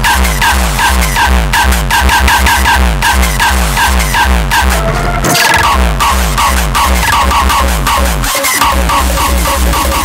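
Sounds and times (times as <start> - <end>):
deep bass: 0.0 - 10.0
electronic dance music: 0.0 - 10.0
heavy kick drums: 0.0 - 10.0
repeating synth riff: 0.0 - 10.0.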